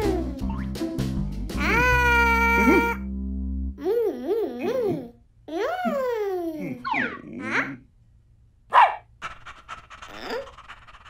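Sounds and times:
cartoon dog barking: 0:06.7 - 0:07.8, 0:08.7 - 0:09.1
cartoon dog panting: 0:09.2 - 0:11.0.

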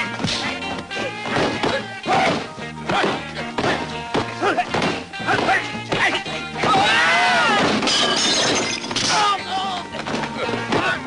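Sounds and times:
background music: 0:00.0 - 0:11.0
people shouting: 0:00.4 - 0:08.0, 0:09.0 - 0:11.0
glass shattering: 0:07.6 - 0:09.3.

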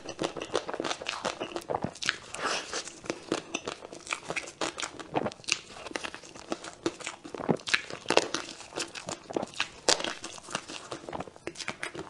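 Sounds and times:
soft chewing: 0:00.0 - 0:12.0.

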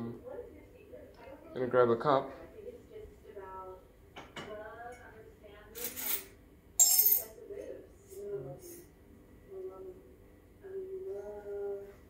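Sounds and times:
crockery clinking: 0:05.8 - 0:07.3.

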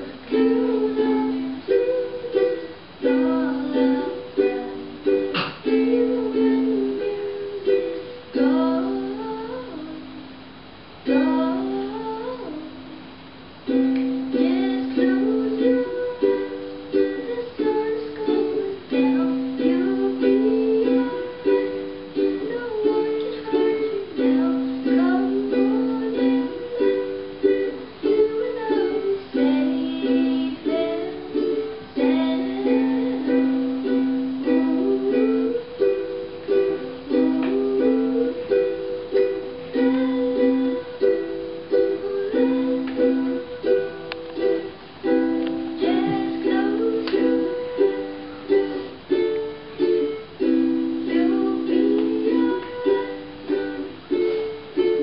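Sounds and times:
ukulele playing: 0:00.0 - 0:55.0.

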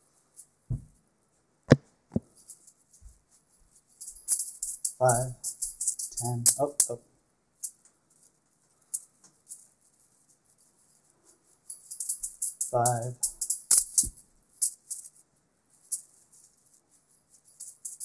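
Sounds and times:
dull knock: 0:00.7 - 0:00.9
beaded juggling balls rattling: 0:02.2 - 0:07.0, 0:07.6 - 0:18.0.

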